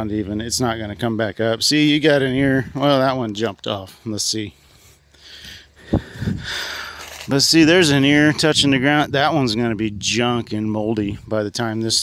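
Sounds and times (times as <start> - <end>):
corn stalks rustling: 6.5 - 8.0.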